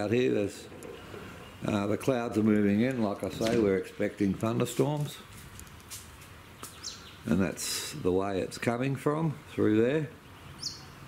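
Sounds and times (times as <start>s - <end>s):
high bird chirp: 6.6s - 7.3s, 10.2s - 11.0s.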